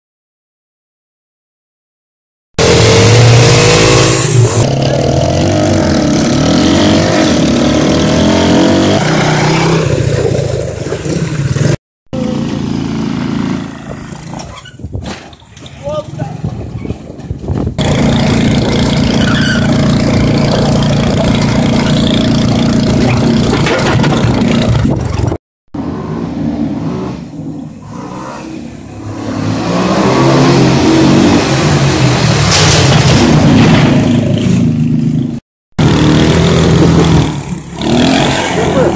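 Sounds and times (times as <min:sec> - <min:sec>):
small engines revving: 0:02.6 - 0:14.4, 0:35.8 - 0:38.9.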